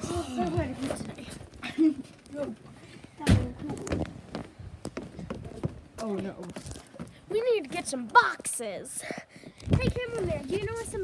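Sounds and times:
footsteps on wooden steps: 0.4 - 11.0
footsteps on gravel: 3.8 - 11.0.

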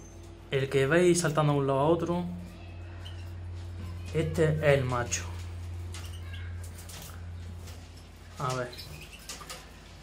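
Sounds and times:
birds hopping on perches: 2.4 - 10.0.

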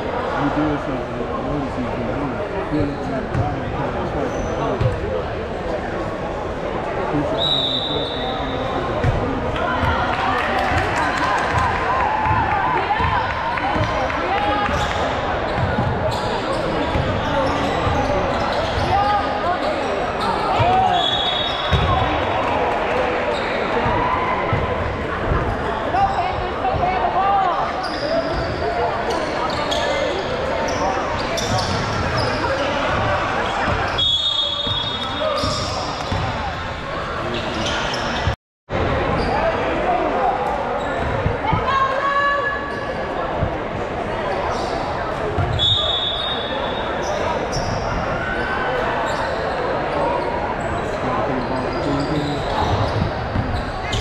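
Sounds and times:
voices of players and spectators: 0.0 - 54.0
basketball bouncing on court: 21.7 - 22.1, 34.6 - 36.4.

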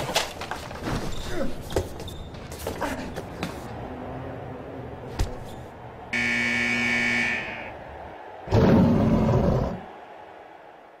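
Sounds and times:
steady buzzer tone: 6.2 - 7.7
bear roar: 8.4 - 9.9.

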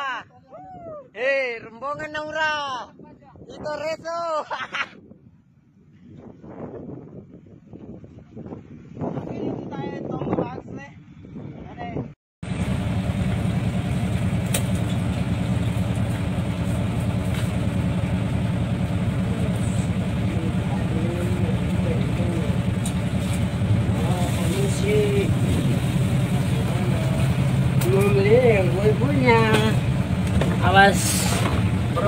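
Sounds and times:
boat engine droning: 12.4 - 32.0.

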